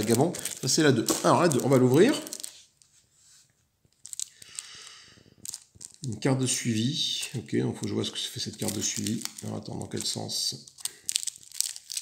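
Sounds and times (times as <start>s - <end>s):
plastic bag crinkling: 0.0s - 3.0s, 3.9s - 12.0s.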